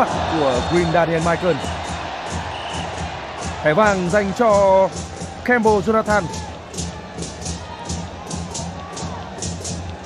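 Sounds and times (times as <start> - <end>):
drums beating: 0.0 - 10.0
rhythmic clapping: 0.0 - 10.0
stadium crowd: 0.0 - 10.0.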